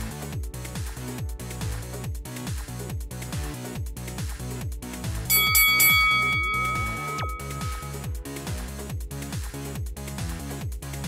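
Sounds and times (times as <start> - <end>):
bell-like timer chime: 5.3 - 8.2.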